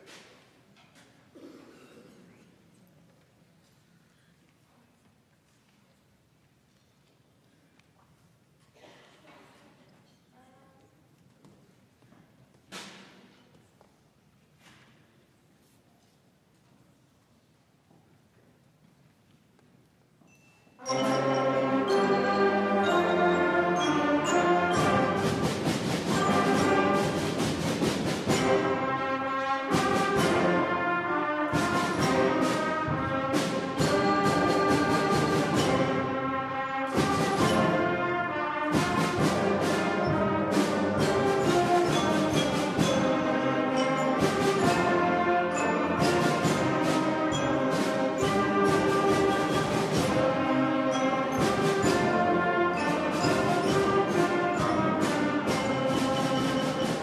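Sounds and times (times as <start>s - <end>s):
concert band playing: 20.8s - 57.0s
drum and cymbal hits: 21.1s - 30.8s, 31.4s - 38.0s, 38.6s - 57.0s.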